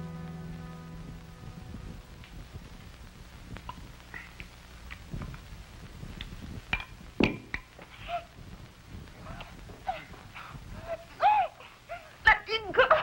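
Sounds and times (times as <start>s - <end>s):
woman's high-pitched cry: 10.8s - 13.0s.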